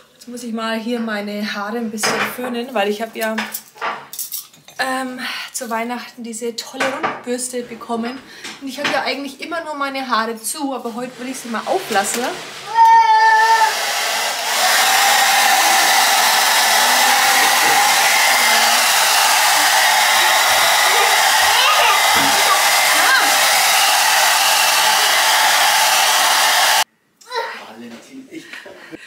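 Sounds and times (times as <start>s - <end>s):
hair dryer blowing: 11.0s - 26.9s.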